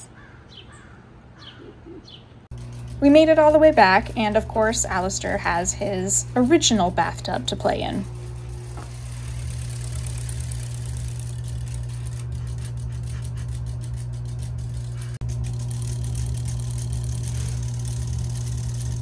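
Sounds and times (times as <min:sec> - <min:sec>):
low motor hum: 0:02.5 - 0:19.0.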